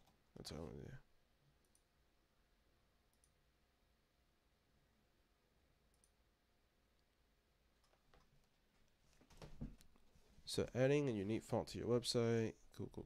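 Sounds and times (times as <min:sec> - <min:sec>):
computer mouse clicks: 0:05.9 - 0:06.2.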